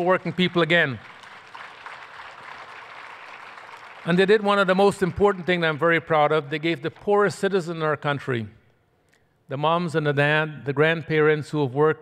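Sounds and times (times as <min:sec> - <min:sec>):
audience applause: 0:00.0 - 0:05.7.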